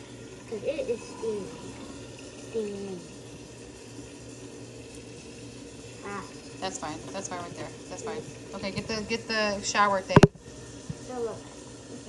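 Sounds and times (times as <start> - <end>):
faucet running into a pot: 0.0 - 12.0.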